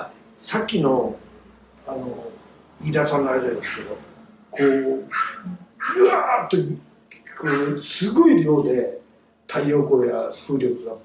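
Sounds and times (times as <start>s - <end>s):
man talking: 0.0s - 1.2s, 1.8s - 11.0s.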